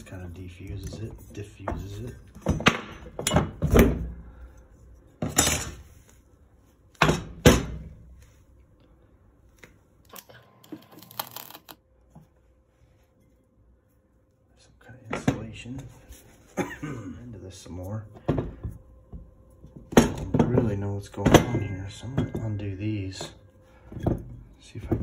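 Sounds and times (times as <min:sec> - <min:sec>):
metal parts clunking on workbench: 0:00.8 - 0:04.2, 0:05.2 - 0:05.9.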